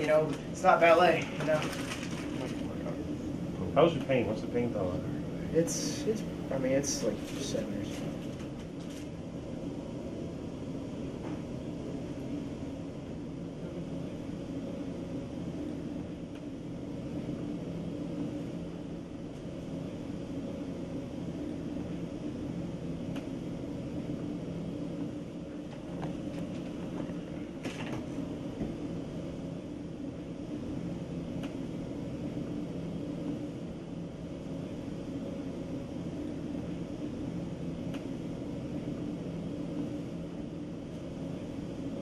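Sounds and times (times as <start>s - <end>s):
low droning hum: 0.0s - 42.0s.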